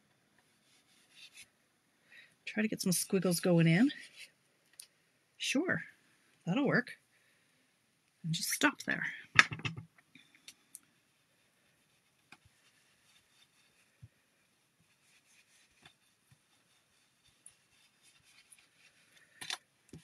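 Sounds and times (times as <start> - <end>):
brush tapping and scuffing on card: 14.8 - 20.0.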